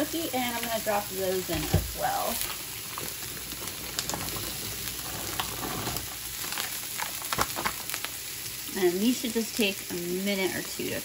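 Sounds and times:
fish sizzling in hot oil: 0:00.0 - 0:11.0
oil crackling: 0:00.0 - 0:11.0.

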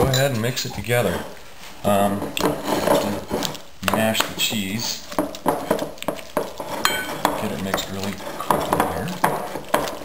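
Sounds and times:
spatula mashing cream cheese: 0:00.0 - 0:10.0
spatula knocking glass bowl: 0:06.8 - 0:09.5.

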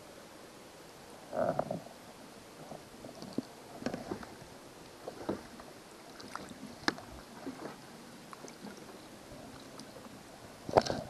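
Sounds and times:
water sloshing and gurgling: 0:02.6 - 0:11.0.

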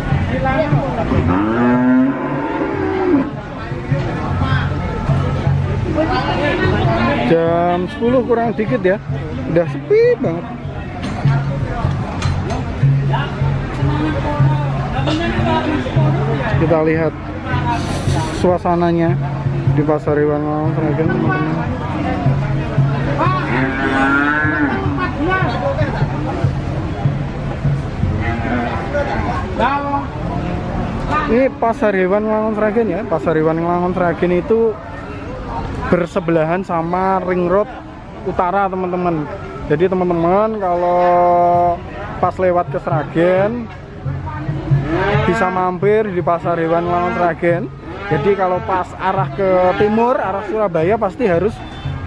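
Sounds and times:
cow mooing: 0:01.1 - 0:03.4, 0:23.4 - 0:25.0, 0:28.1 - 0:29.2, 0:44.7 - 0:45.6.

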